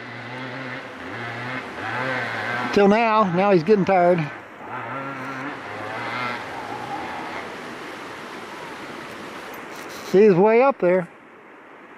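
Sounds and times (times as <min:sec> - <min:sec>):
distant dirt bike engine under load: 0:00.0 - 0:03.4.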